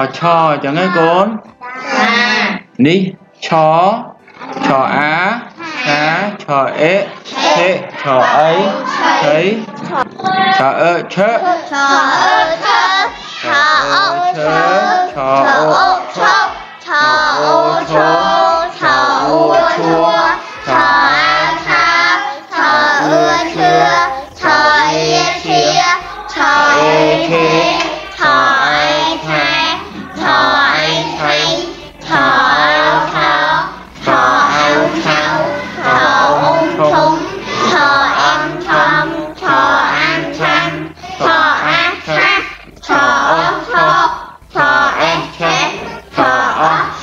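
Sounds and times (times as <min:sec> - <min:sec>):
children singing: 0:00.0 - 0:02.8, 0:04.2 - 0:47.0
backing music: 0:00.0 - 0:47.0.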